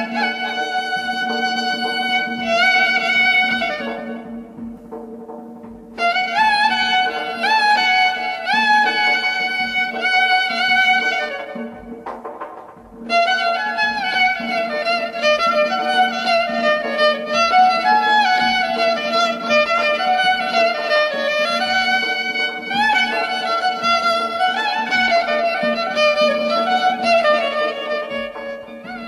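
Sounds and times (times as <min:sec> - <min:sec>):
violin ornamented melody: 0:00.0 - 0:29.0.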